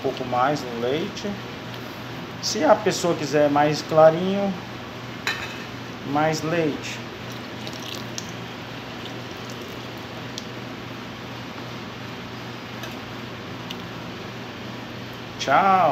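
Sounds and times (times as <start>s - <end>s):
pot bubbling: 7.1s - 10.8s.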